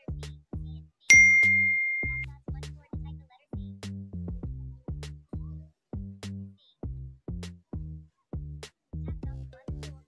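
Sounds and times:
bright electronic ding: 1.1 - 2.3.

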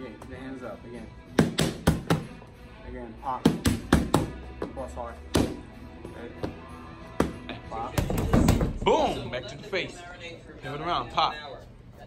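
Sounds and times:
background music: 0.0 - 11.6
gloved punches on boxing pads: 1.4 - 2.3, 3.4 - 4.4, 5.3 - 5.6.

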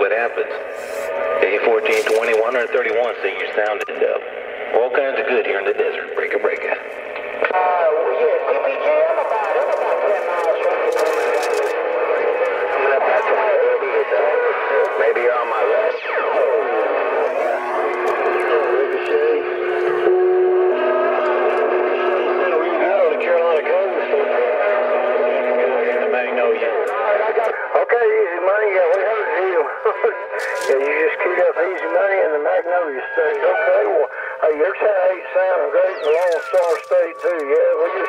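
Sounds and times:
garbled radio voices: 0.0 - 38.0
heterodyne whistles and squeals: 35.8 - 37.2
falling whistle: 35.9 - 36.8.

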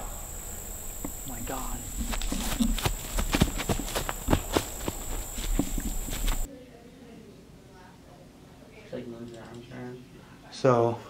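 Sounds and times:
insects buzzing: 0.0 - 6.5
running footsteps through grass: 1.0 - 6.5.

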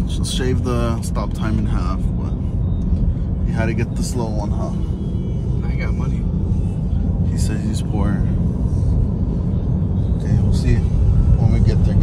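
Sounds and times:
road and tyre rumble in car: 0.0 - 12.0.

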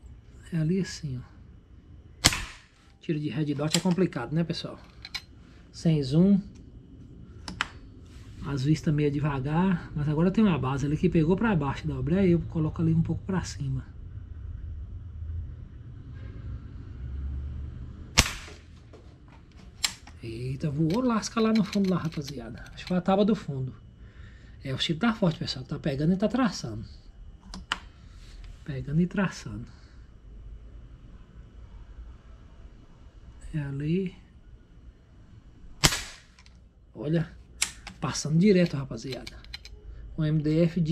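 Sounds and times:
air rifle shot: 2.2 - 2.8, 18.2 - 18.7, 35.8 - 36.4
sharp click: 19.8 - 20.2, 37.6 - 38.0, 38.6 - 39.7.

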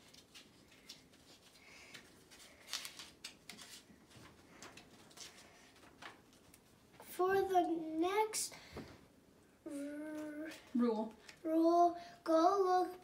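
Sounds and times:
paper crackles: 0.0 - 6.8
paper rustling and crinkling: 0.0 - 6.9.

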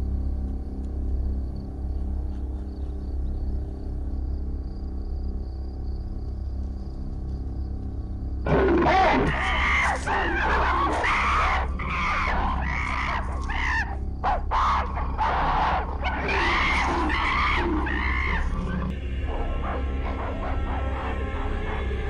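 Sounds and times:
background music: 8.4 - 22.0.

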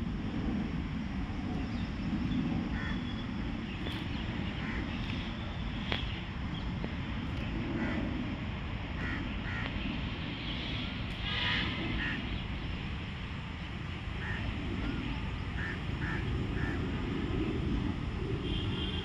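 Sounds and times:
low outdoor rumble: 0.0 - 19.0
short bird calls: 15.6 - 17.0.

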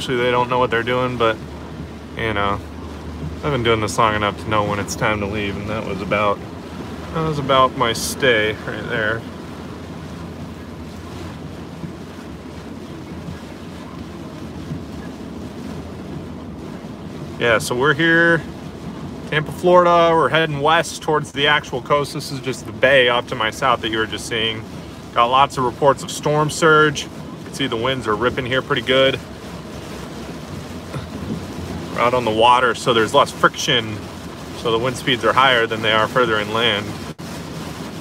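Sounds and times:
heavy rain: 0.0 - 38.0
strong wind against car: 0.0 - 38.0
tyres on wet road: 0.0 - 38.0.

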